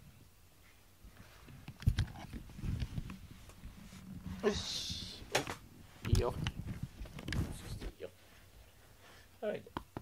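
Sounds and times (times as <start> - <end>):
rustling: 0.1 - 9.3.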